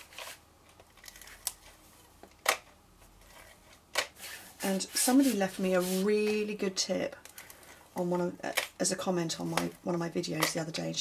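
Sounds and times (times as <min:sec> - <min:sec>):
card rustling: 0:00.0 - 0:06.5.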